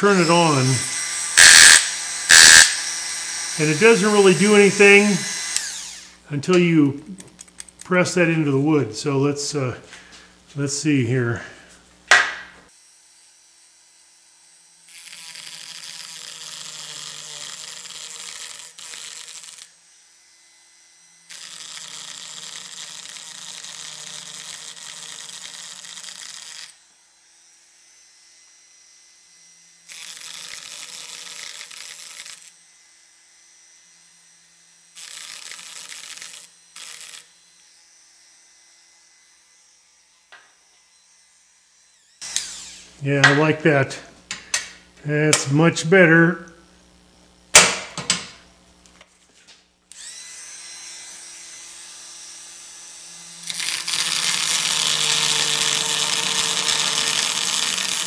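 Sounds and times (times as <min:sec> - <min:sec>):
motor humming: 0:00.0 - 0:06.2, 0:40.7 - 0:43.4, 0:49.9 - 0:58.0
power carver blade chattering: 0:00.0 - 0:06.2, 0:14.8 - 0:19.8, 0:34.8 - 0:37.8, 0:41.7 - 0:43.6, 0:49.9 - 0:58.0.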